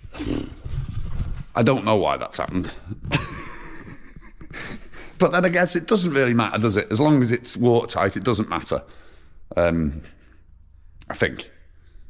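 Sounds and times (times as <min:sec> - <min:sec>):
man laughing: 0:02.6 - 0:05.3
quiet breathing: 0:08.8 - 0:10.8
breathy exhale: 0:08.9 - 0:09.4.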